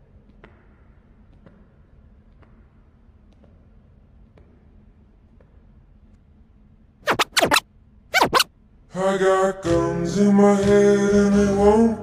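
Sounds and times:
record scratching: 7.1 - 7.6, 8.2 - 8.5.

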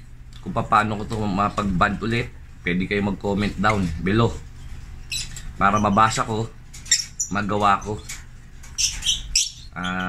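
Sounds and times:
birds chirping: 0.4 - 10.0.

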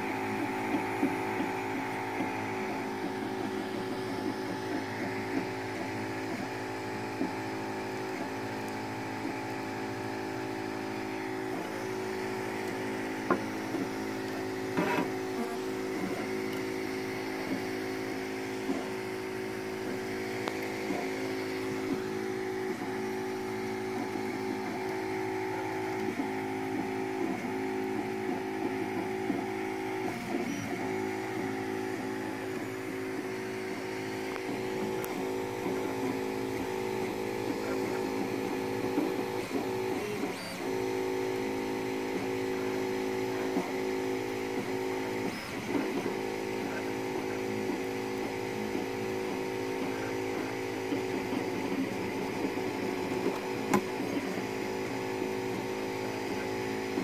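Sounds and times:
cooling fans whirring: 0.0 - 57.0
stepper motors whining: 0.0 - 57.0.

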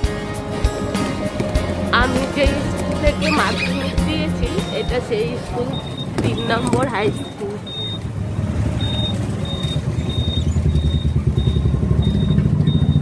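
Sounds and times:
motor and road rumble: 0.0 - 13.0
short high beep: 3.2 - 8.0.

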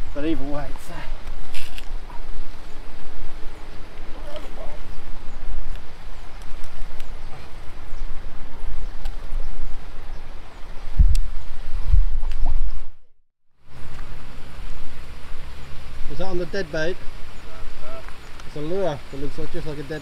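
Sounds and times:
wind buffeting microphone: 0.0 - 13.1.

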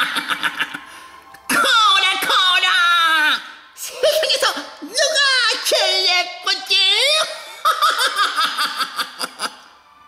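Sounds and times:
person laughing high-pitched: 0.0 - 0.9, 6.9 - 9.7.

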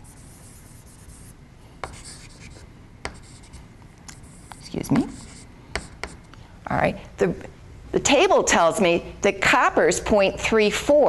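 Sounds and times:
chalk scratching on chalkboard: 0.0 - 6.2.

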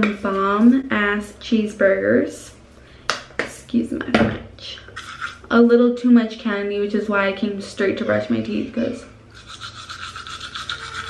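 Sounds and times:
toothbrush scrubbing teeth: 5.0 - 5.4, 9.3 - 11.0.

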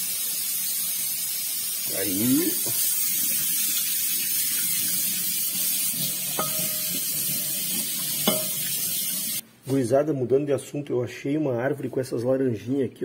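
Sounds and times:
tap water running into sink: 2.1 - 9.4
glass plate clinking: 6.4 - 7.0, 8.2 - 8.7.

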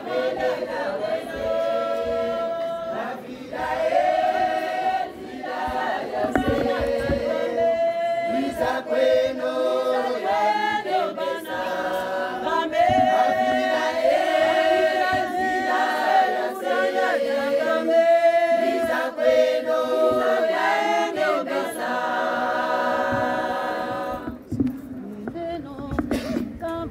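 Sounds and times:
women's choir singing: 0.0 - 26.3.

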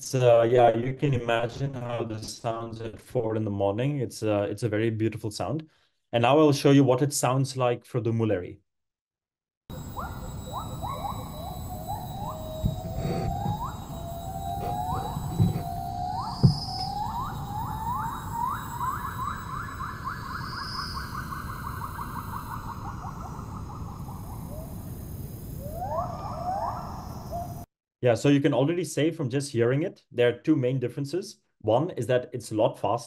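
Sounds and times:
faint knock: 14.6 - 15.7.

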